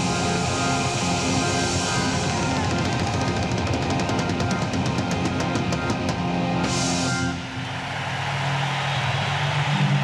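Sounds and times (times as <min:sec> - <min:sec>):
live rock band: 0:00.0 - 0:07.5.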